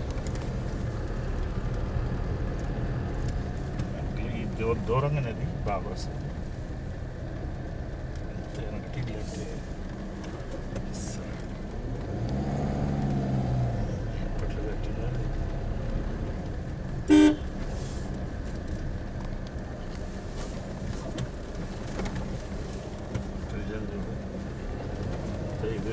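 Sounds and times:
vehicle engine and road rumble: 0:00.0 - 0:25.9
car horn toot: 0:17.1 - 0:17.6.

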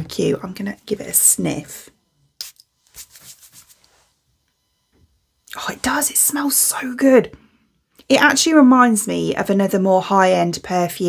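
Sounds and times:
perfume atomiser spray hiss: 0:02.4 - 0:04.0.

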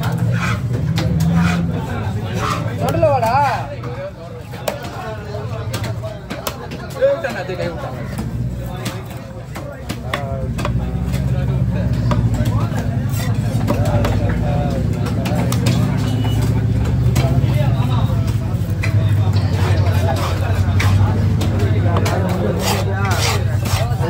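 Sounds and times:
voices talking: 0:00.0 - 0:24.0.

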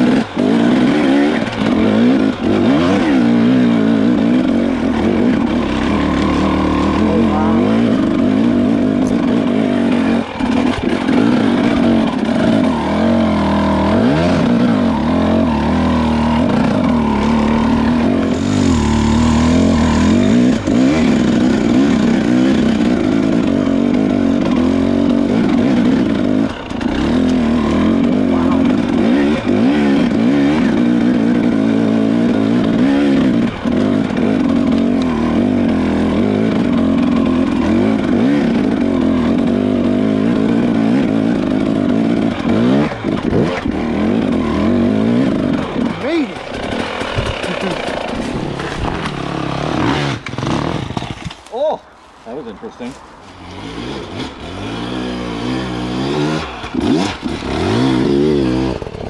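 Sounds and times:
dirt bike engine at low revs: 0:00.0 - 0:59.0.

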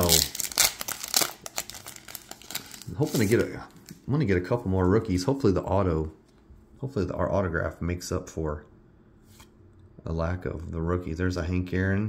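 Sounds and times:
foil wrapper crinkling: 0:00.0 - 0:04.0.

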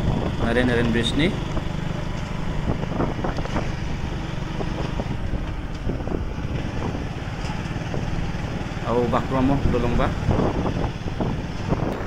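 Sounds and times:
vehicle engine and tyres rumbling: 0:00.0 - 0:12.0.

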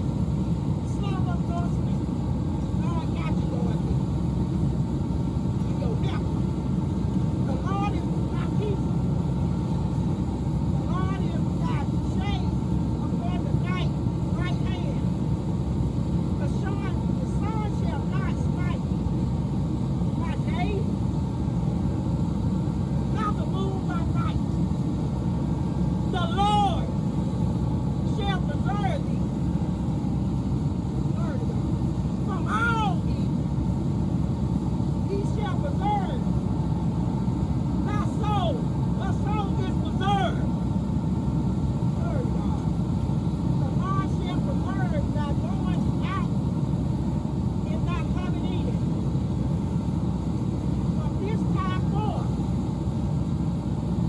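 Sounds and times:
steady low rumble: 0:00.0 - 0:54.0.

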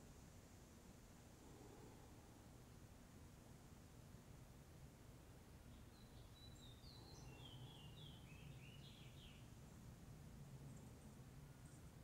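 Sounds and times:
songbird chirping: 0:05.7 - 0:09.6.

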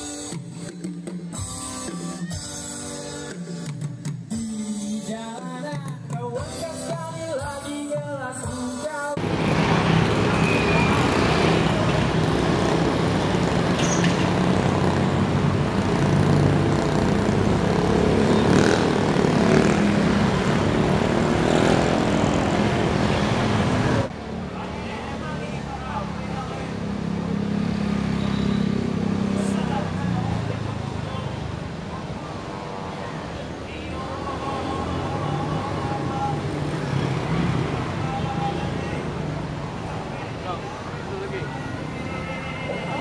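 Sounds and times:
hum of engines: 0:09.2 - 0:43.0
motorcycles and cars passing: 0:09.2 - 0:43.0.

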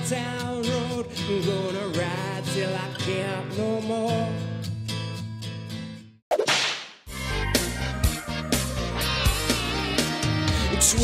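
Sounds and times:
country song with guitar: 0:00.0 - 0:06.1, 0:07.2 - 0:11.0.

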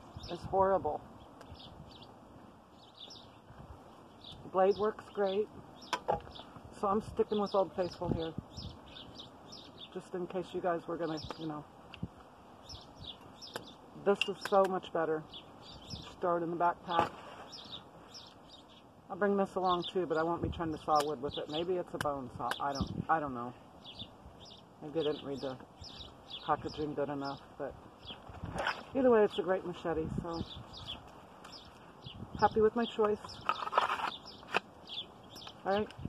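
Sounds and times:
songbirds chirping: 0:00.0 - 0:36.0.

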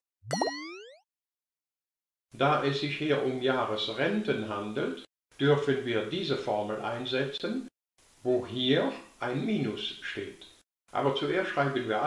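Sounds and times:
cartoon upward bloop: 0:00.3 - 0:01.0.

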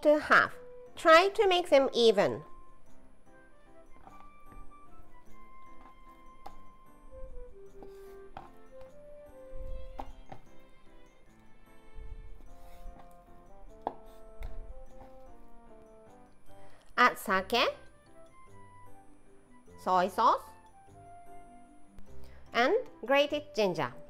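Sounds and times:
light background music: 0:00.0 - 0:24.0.

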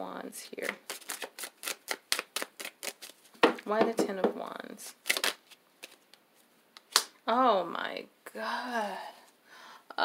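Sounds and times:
cards riffle shuffling: 0:00.6 - 0:03.6, 0:05.0 - 0:06.1
card snap: 0:06.8 - 0:07.1.

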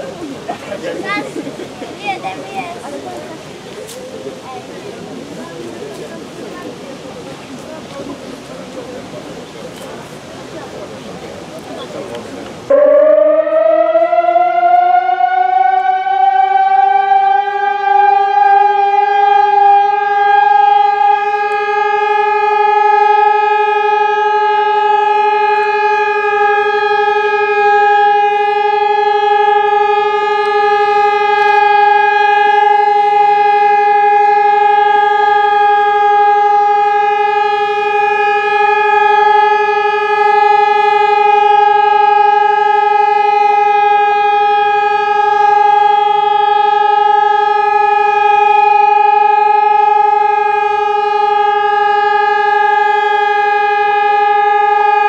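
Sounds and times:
siren steady tone: 0:12.7 - 0:55.0.

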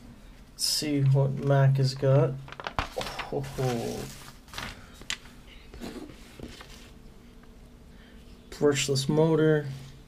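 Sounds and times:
paper pages rustling: 0:02.5 - 0:07.0.

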